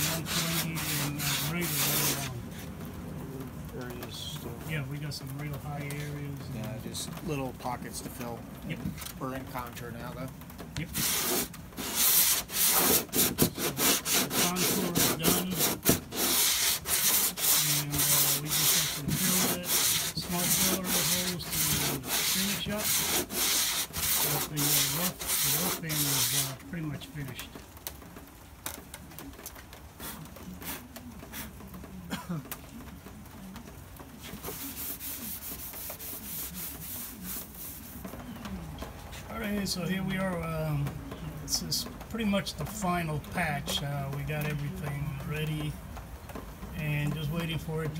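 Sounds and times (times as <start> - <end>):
sandpaper rasping strokes: 0.0 - 2.3, 10.9 - 26.6, 34.2 - 38.1.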